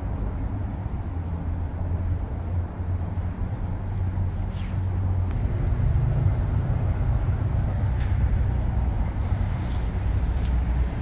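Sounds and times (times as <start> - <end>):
city road traffic rumble: 0.0 - 11.0
vehicle passing: 1.3 - 11.0.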